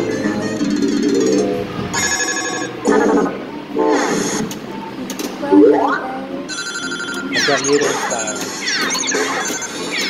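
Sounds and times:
steady high electronic tone: 0.0 - 4.4, 5.4 - 10.0.

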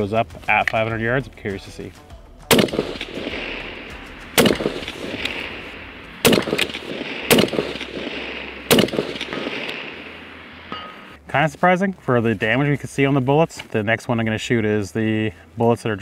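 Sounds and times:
rifle shots with rolling echo: 2.5 - 11.2.

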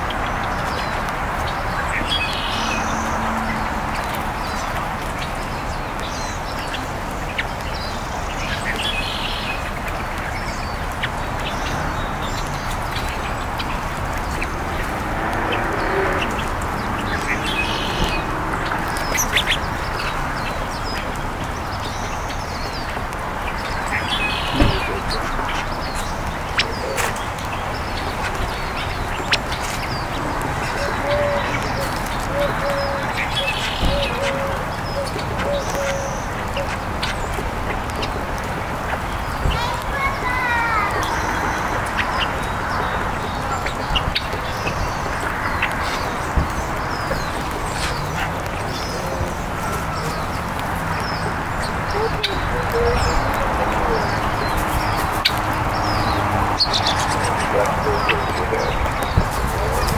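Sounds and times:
birds chirping: 0.0 - 59.9
steady background rush: 9.6 - 59.9.

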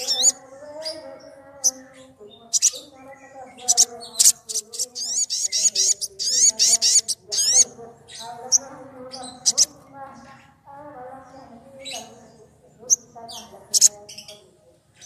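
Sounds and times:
sunbird singing: 0.0 - 15.0.

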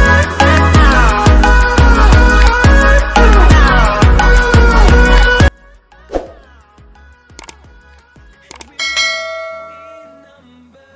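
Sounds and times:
falling whoosh: 6.1 - 6.5
short clicks: 7.3 - 7.6, 8.4 - 8.8
notification bell ding: 8.8 - 10.4.

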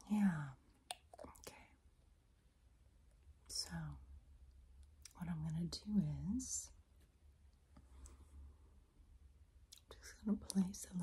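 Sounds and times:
woman whispering: 0.0 - 1.8, 3.5 - 4.1, 5.1 - 6.8, 9.8 - 11.0.

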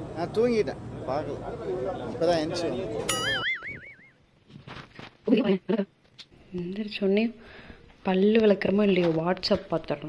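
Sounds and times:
cartoon boing: 3.1 - 4.2.

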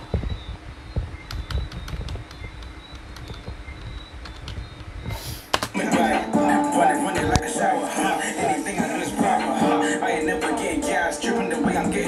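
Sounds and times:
computer keys clicking: 1.2 - 4.9
rap song playing: 5.7 - 12.0.

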